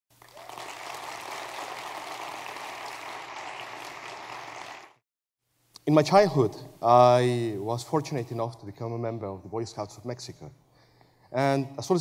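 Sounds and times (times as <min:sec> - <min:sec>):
audience applause: 0:00.1 - 0:05.0.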